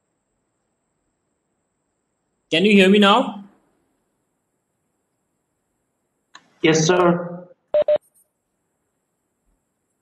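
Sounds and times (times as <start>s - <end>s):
short electronic beeps: 7.8s - 8.1s.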